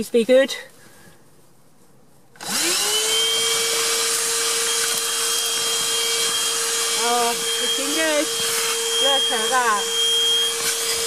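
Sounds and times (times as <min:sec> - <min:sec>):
handheld vacuum cleaner running: 0:02.4 - 0:11.0.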